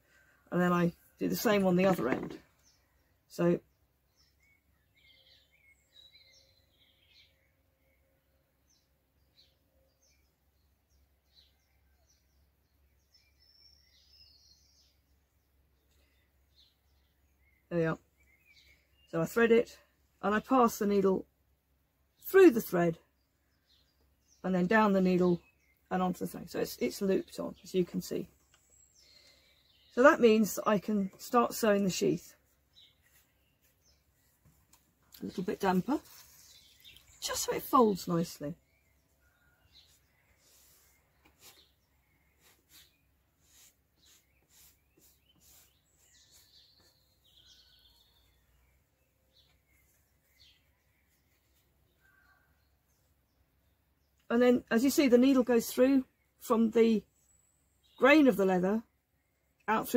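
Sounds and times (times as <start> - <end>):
small birds chirping: 0.0 - 59.9.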